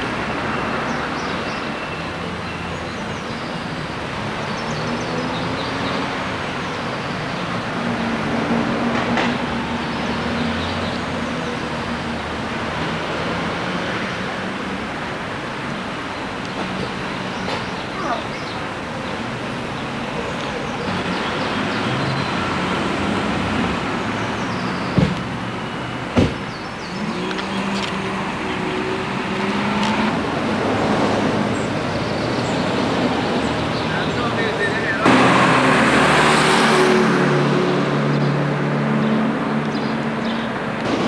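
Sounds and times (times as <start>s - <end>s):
cars passing: 0.0s - 41.0s
loud vehicle passing: 3.6s - 41.0s.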